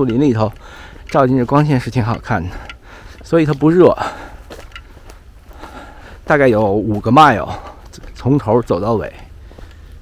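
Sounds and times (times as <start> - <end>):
footsteps on dirt trail: 0.0 - 10.0
low steady rumble: 0.0 - 10.0.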